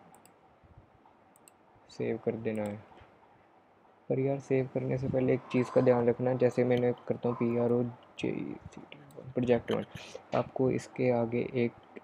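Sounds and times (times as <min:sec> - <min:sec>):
computer mouse clicks: 0:00.1 - 0:00.4, 0:01.3 - 0:01.6, 0:02.4 - 0:02.8.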